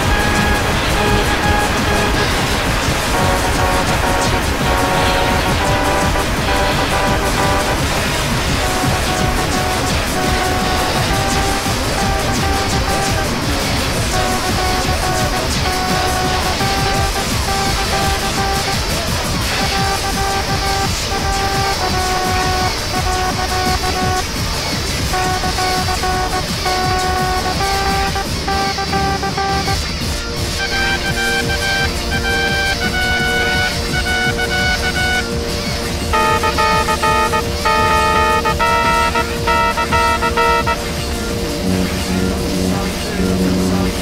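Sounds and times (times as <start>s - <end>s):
cartoon trumpet toots: 0.0s - 24.4s, 25.1s - 30.0s, 30.6s - 41.0s
background music: 0.0s - 44.0s
distorted low rumble: 0.0s - 44.0s.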